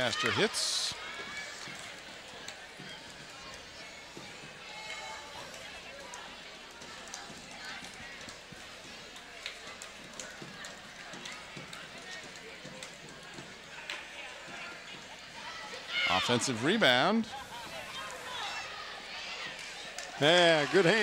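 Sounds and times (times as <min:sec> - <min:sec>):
crowd murmur: 0:00.0 - 0:21.0.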